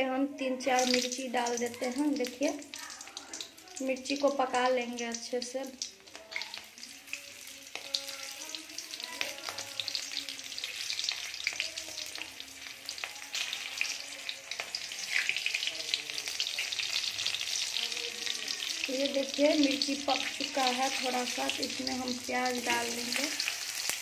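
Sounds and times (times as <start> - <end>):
chillies sizzling in hot oil: 0.0 - 24.0.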